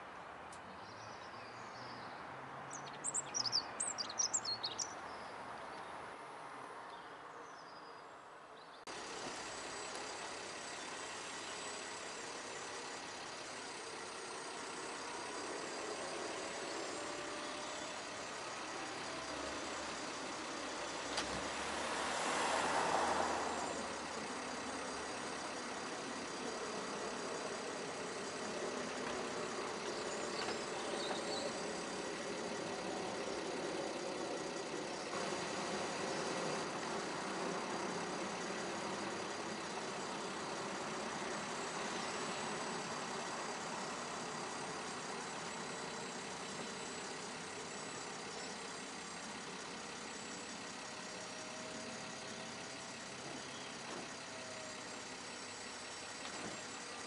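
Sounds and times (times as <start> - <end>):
car engine idling: 8.9 - 57.0
convertible roof mechanism running: 8.9 - 57.0.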